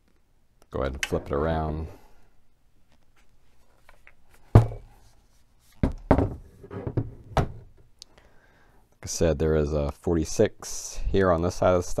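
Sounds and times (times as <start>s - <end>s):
rifle thunk on wooden table: 4.6s - 4.8s.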